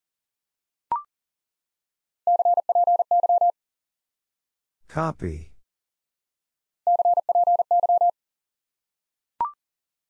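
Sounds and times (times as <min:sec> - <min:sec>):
morse code sine tone: 0:02.3 - 0:03.5, 0:06.9 - 0:08.1.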